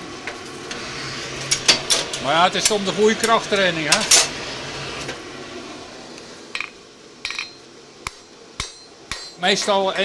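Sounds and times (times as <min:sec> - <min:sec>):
hammer striking metal: 0:06.6 - 0:09.4.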